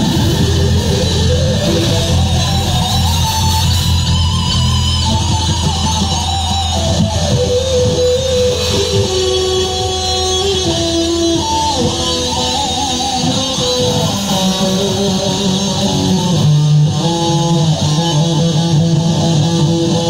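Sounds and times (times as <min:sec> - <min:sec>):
bass: 0:00.0 - 0:20.0
drums: 0:00.0 - 0:20.0
electric guitar solo: 0:00.0 - 0:20.0.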